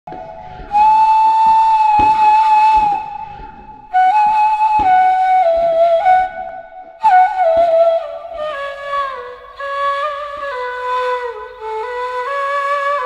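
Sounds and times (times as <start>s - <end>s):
solo flute melody: 0.1s - 13.0s
faint thuds: 1.3s - 6.5s.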